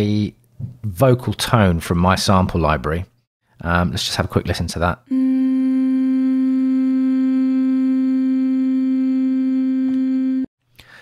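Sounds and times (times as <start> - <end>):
sustained sampled vocal note: 5.1 - 10.5.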